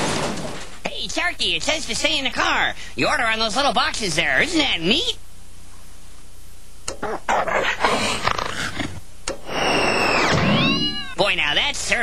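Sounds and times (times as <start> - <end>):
animal-like vocal noise: 6.9 - 11.2
falling whistling tones: 9.4 - 11.2.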